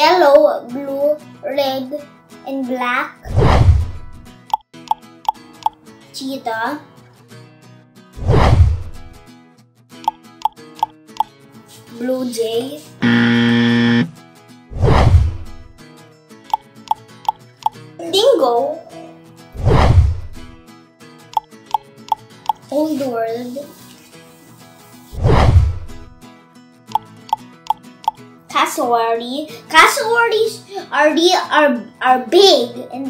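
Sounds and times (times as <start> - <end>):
soft background music: 15.7 - 25.2, 25.8 - 33.0.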